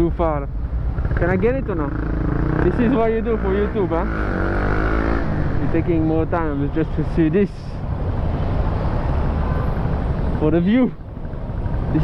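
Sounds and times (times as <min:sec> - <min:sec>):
vehicle engines in slow traffic: 0:00.0 - 0:12.0.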